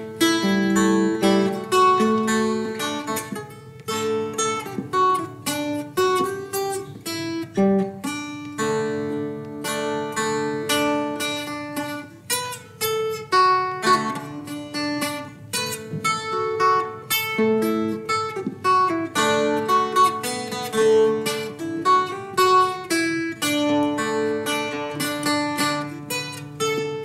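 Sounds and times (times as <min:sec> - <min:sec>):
plucked acoustic guitar music: 0:00.0 - 0:27.0.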